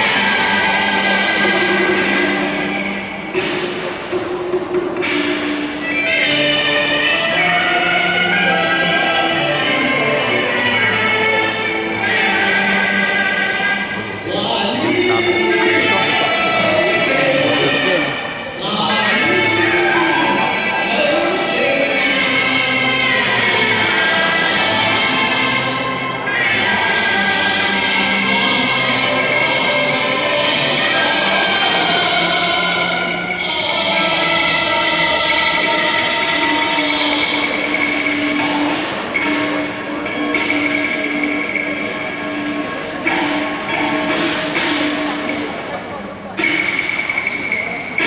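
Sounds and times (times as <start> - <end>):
opera singing voice: 0.0 - 3.4, 5.8 - 48.0
sustained instrumental tones: 0.0 - 48.0.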